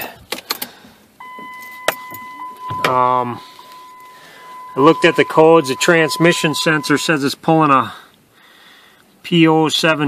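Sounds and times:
dashboard warning chime: 1.2s - 7.3s.

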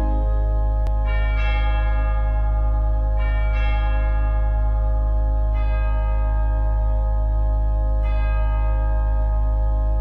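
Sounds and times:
ringing bell tones: 0.0s - 7.0s
low sustained drone: 0.0s - 10.0s.

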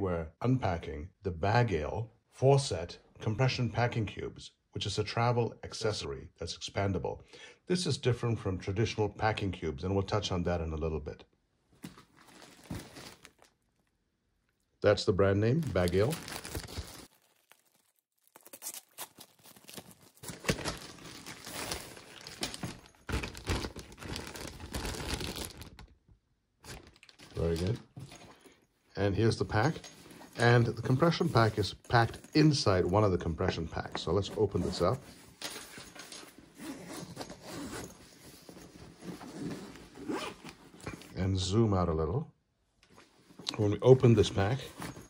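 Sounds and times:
plastic bag crinkling: 11.8s - 13.9s, 15.6s - 26.0s, 26.6s - 28.4s
zipper being unzipped: 39.1s - 41.1s.

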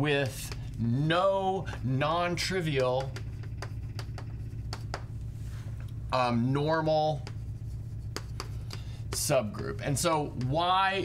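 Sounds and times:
chalk writing on blackboard: 3.0s - 5.1s, 7.1s - 9.4s.

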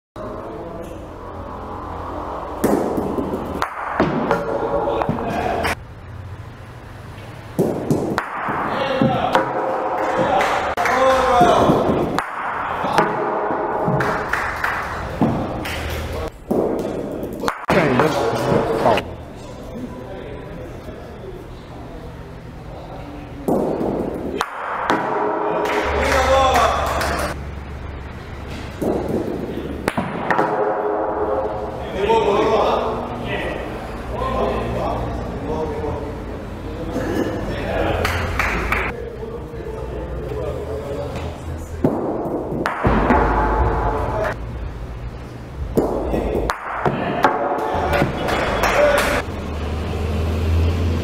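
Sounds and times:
balls colliding with sharp crack: 2.5s - 5.8s, 7.5s - 19.1s, 23.4s - 27.4s, 28.4s - 31.8s, 41.2s - 44.4s, 45.6s - 49.3s.

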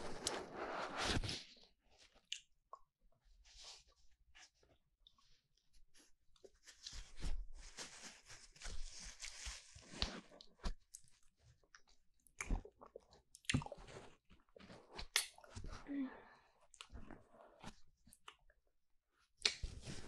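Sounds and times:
lip and tongue smacks and clicks: 19.4s - 19.7s.

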